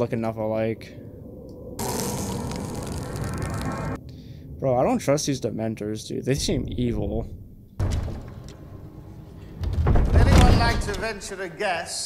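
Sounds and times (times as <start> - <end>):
faint low rumble: 0.0 - 7.8.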